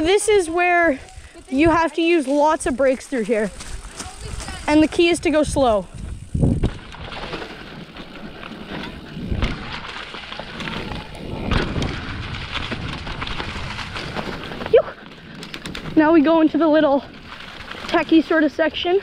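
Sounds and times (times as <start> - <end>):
bike rattling and thumping: 0.0 - 19.0.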